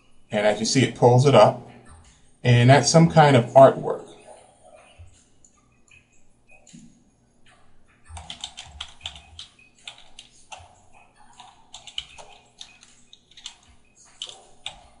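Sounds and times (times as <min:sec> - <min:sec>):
computer keyboard typing: 0:08.1 - 0:15.0.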